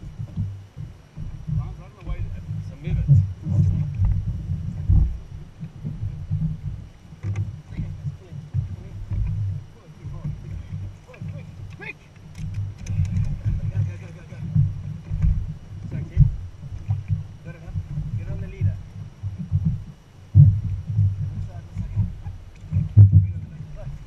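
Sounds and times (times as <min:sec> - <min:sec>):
low uneven rumble: 0:00.0 - 0:24.0
water slapping on a boat: 0:00.0 - 0:24.0
sharp clicks: 0:11.7 - 0:13.4
muffled voices: 0:12.8 - 0:14.6.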